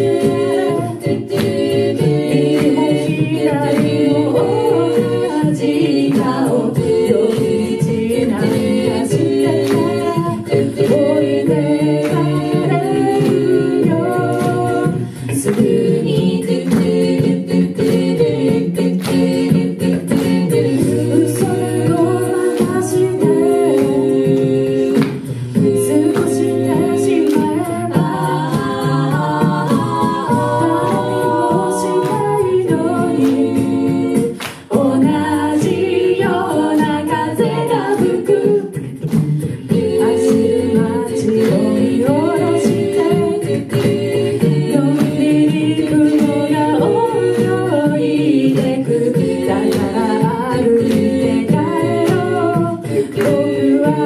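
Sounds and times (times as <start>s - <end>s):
a cappella group singing: 0.0s - 54.0s
vocal percussion beat: 0.0s - 54.0s.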